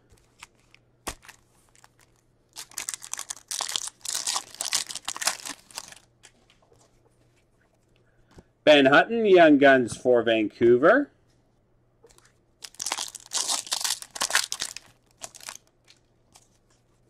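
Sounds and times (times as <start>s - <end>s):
foil wrapper tearing and crinkling: 0.4s - 6.1s, 12.6s - 16.4s.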